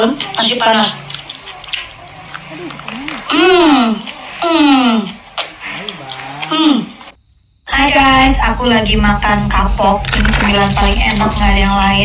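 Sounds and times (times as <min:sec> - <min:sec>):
mouth clicks: 0:00.0 - 0:07.2
wet chewing: 0:00.0 - 0:07.2.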